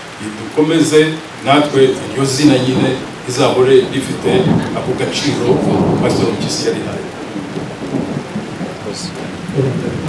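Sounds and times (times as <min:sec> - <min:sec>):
steady low rumbling: 0:00.1 - 0:10.0.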